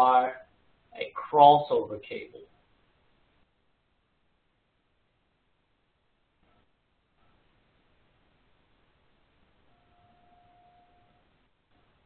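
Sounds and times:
faint steady tone: 0.0s - 12.0s
low background hiss: 0.0s - 12.0s.

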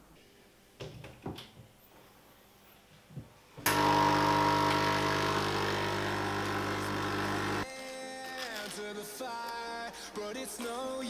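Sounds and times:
electric motor humming: 3.7s - 7.7s.

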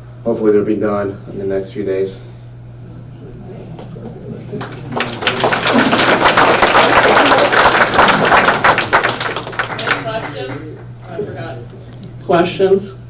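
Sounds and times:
audience applauding: 4.4s - 10.9s.

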